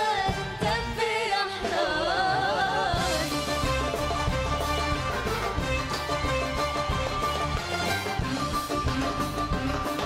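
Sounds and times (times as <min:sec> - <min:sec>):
live band playing pop song: 0:00.0 - 0:10.0.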